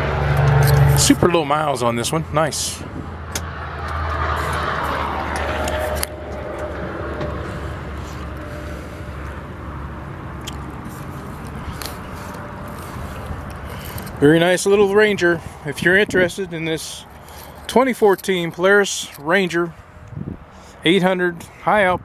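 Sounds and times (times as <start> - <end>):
camera handling rustle: 10.5 - 14.2.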